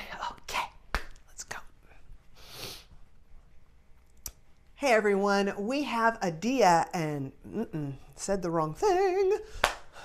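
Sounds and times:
woman speaking: 4.8 - 9.5.

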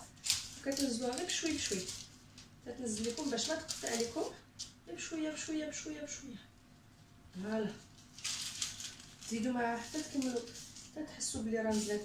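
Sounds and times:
woman speaking: 0.6 - 2.0, 2.6 - 6.5, 7.3 - 7.9, 9.2 - 12.0.

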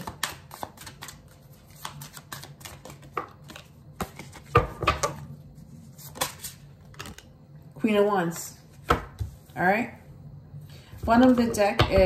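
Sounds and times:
cards being shuffled: 0.0 - 4.5.

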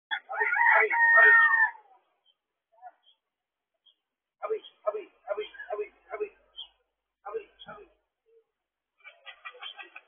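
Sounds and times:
rooster crowing: 0.1 - 1.8.

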